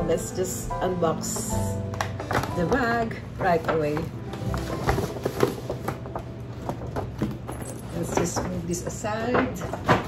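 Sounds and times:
paper bag rustling: 2.2s - 8.7s.

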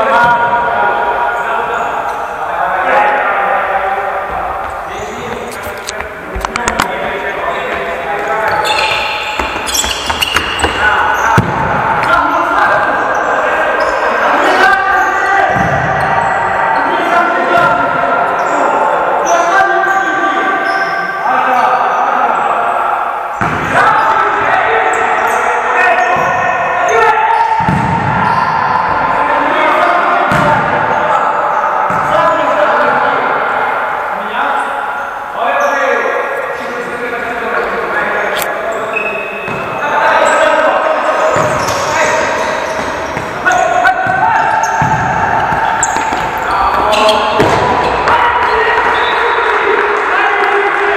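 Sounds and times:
players shouting: 0.0s - 37.9s, 38.6s - 50.9s.

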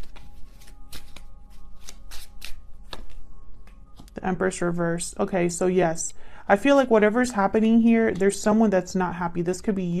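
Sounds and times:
cards being shuffled by hand: 0.0s - 4.2s.

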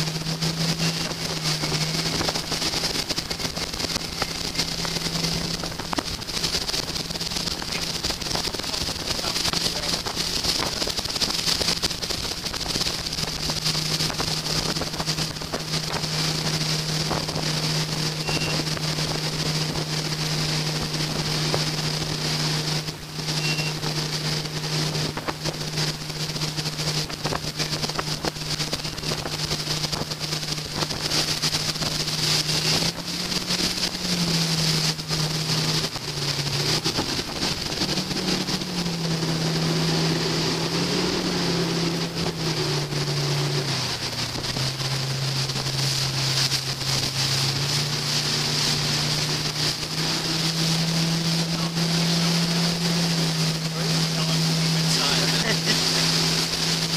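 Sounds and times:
boat engine droning: 0.0s - 56.9s
wind on microphone: 0.0s - 56.9s.

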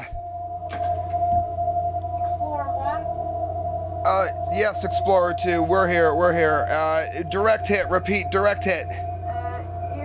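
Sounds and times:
wavering voice-like sound: 0.0s - 0.2s, 2.1s - 3.3s, 4.1s - 10.0s
low hum: 0.0s - 10.0s
steady single tone: 0.0s - 10.0s.

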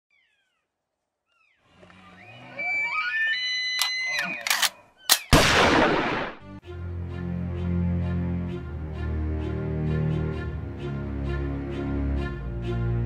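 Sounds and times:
electronic tones rising in pitch: 2.0s - 4.5s
sharp clicks: 3.7s - 5.4s.

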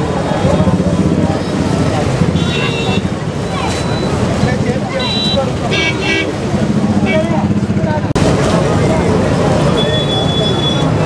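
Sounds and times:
crowd chatter: 0.0s - 11.0s
traffic noise: 0.0s - 11.0s
vehicle horns tooting: 2.2s - 7.5s, 9.7s - 11.0s.

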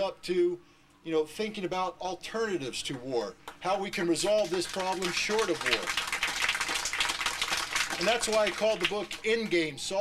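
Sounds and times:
audience applause: 4.4s - 9.2s.

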